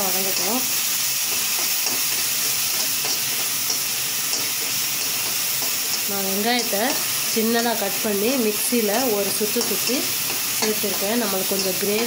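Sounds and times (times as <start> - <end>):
food frying hiss: 0.0 - 12.0.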